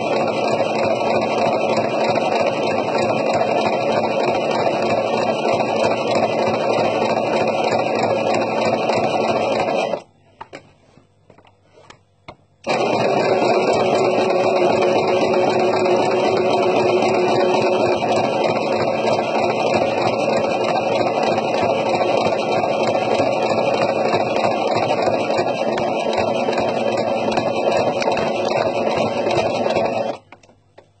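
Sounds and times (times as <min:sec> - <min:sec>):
electric sewing machine running: 0:00.0 - 0:10.0, 0:12.6 - 0:30.3.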